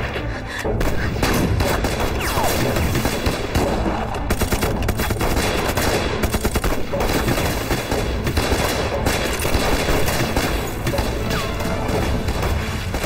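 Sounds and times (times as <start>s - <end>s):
rapid rifle shots: 0.0s - 13.0s.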